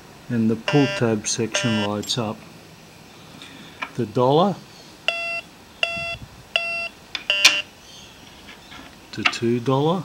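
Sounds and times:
metal detector beeps: 0.7 - 1.9, 5.1 - 7.6.

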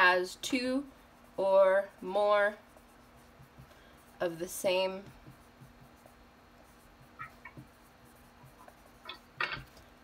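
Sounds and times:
marker writing on whiteboard: 0.0 - 9.4
marker squeaks: 7.1 - 7.8.

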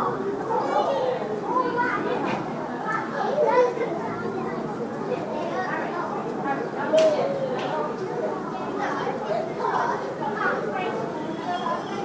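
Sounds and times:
children's voices hubbub: 0.0 - 12.0.

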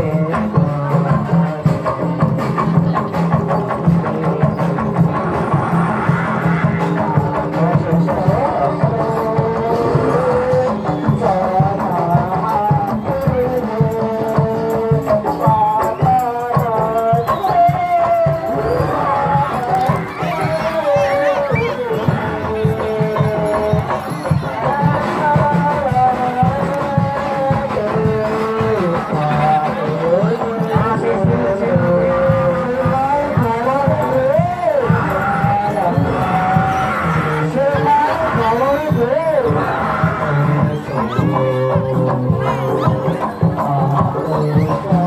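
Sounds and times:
reedy shawm melody: 0.0 - 45.0
steady drum beat: 0.0 - 45.0.

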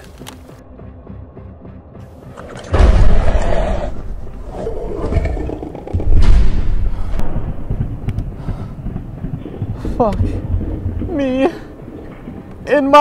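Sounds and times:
creature roaring: 3.1 - 6.0.

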